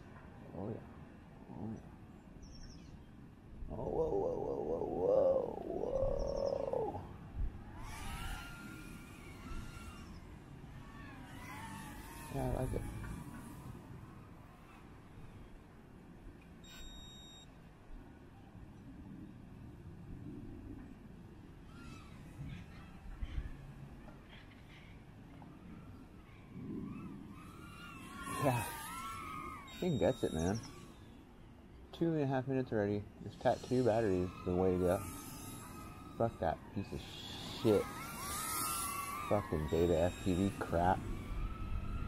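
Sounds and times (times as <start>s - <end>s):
drone motors whining: 3.7s - 15.6s, 21.6s - 31.9s, 33.2s - 42.0s.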